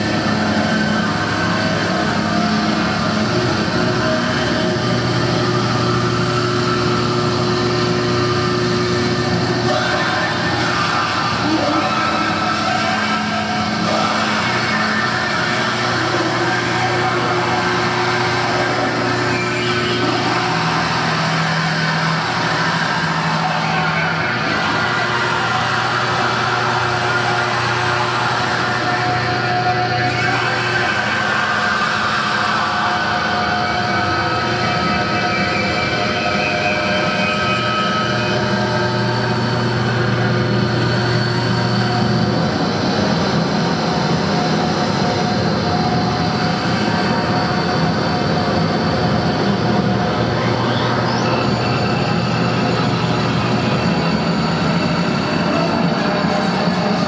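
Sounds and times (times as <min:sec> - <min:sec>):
loud drone noise music: 0:00.0 - 0:57.0
low held tones: 0:00.0 - 0:57.0.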